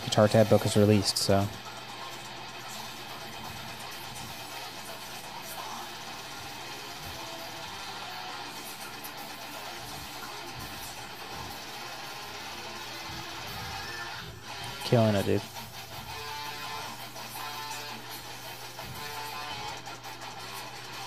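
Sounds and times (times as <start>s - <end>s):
death metal electric guitar: 0.0s - 21.0s
metal band backing track: 0.0s - 21.0s.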